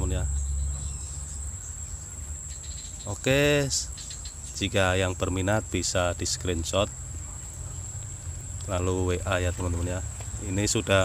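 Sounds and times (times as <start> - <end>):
low rumble: 0.0 - 2.2
insects trilling: 0.0 - 11.0.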